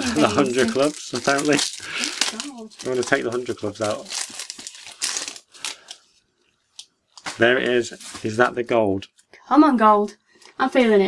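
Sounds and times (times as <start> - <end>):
foil card pack crinkling: 0.3 - 8.5.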